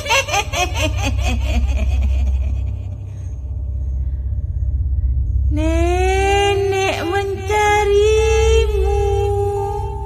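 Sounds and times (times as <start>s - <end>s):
cackling laugh: 0.0s - 3.0s
deep rumbling drone: 0.0s - 10.0s.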